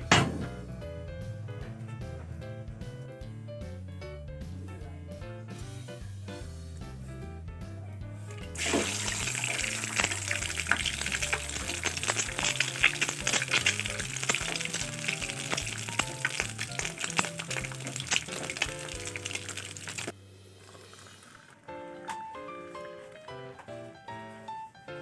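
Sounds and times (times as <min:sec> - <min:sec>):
egg sizzling in hot oil: 0:08.6 - 0:21.7.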